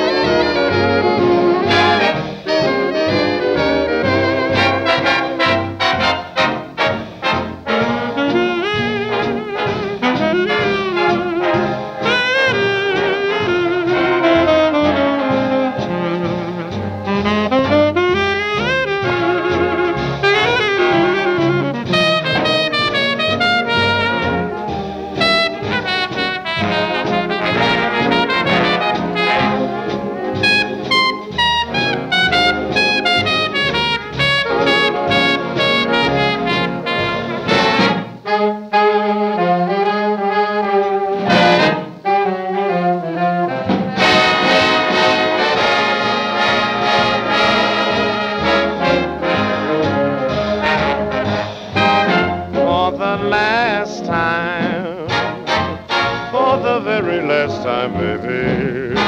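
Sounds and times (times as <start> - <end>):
big band playing: 0.0 - 59.0
trumpets and trombones: 0.0 - 59.0.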